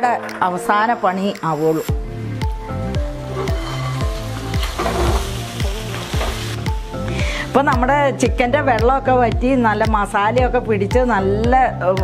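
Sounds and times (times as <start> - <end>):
background music with bass beat: 1.9 - 12.0
chicken sizzling in metal pot: 2.9 - 7.6
spatula stirring in pot: 3.1 - 6.4.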